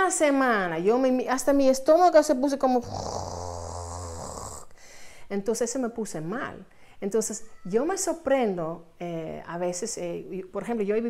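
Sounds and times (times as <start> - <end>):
woman's rasping throat growl: 2.8 - 4.8.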